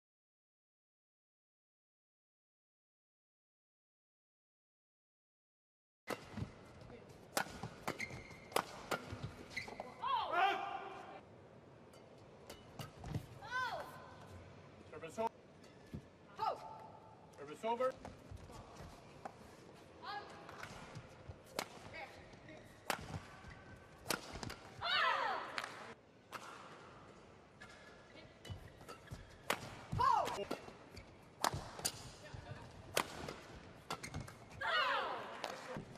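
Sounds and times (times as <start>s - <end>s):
shoes squeaking on court: 6.2s - 10.1s, 27.6s - 32.7s, 33.7s - 34.6s
rackets striking shuttlecock: 7.3s - 9.4s, 24.0s - 24.7s, 27.6s - 32.2s, 32.9s - 34.4s.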